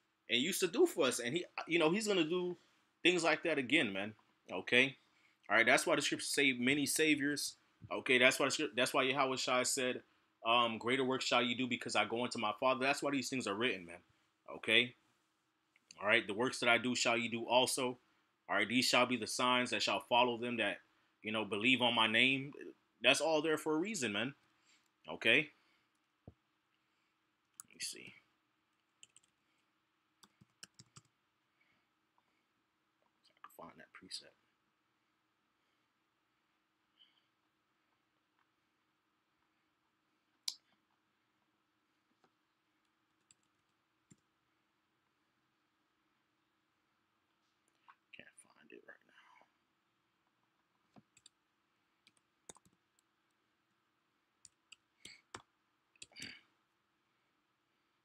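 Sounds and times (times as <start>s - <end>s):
mouse clicks and keystrokes: 30.2s - 31.1s, 50.9s - 51.4s, 52.0s - 53.1s.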